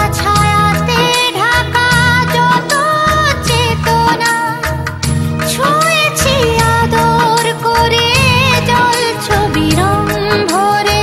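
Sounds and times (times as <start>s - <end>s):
bass notes: 0.0s - 11.0s
drum beat: 0.0s - 11.0s
song with vibrato vocals: 0.0s - 11.0s.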